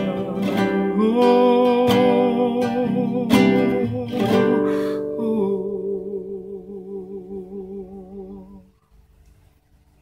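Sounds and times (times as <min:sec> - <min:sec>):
man singing long note with vibrato: 0:00.0 - 0:08.7.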